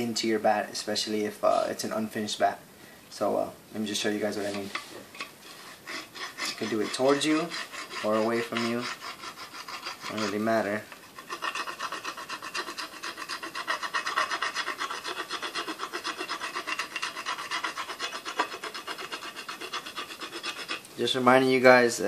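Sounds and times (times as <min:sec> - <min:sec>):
scraper rasping on wooden bat: 0:04.2 - 0:21.4.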